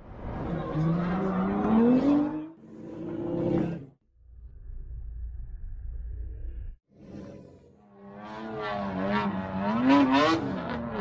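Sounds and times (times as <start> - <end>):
car engine revving hard: 8.2 - 11.0.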